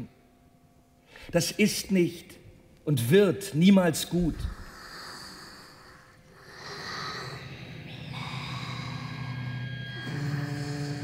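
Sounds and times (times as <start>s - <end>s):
breathy snort-like noises: 4.3s - 11.0s.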